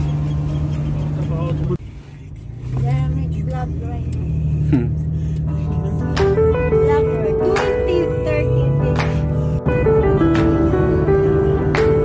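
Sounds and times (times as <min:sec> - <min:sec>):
moving car drone: 0:00.0 - 0:12.0.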